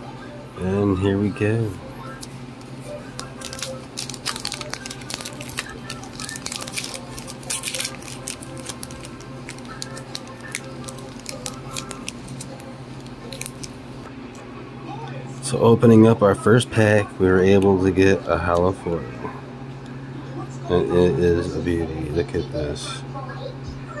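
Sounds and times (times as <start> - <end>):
steady low hum: 0.0 - 24.0
foil wrapper crinkling and tearing: 3.1 - 13.8.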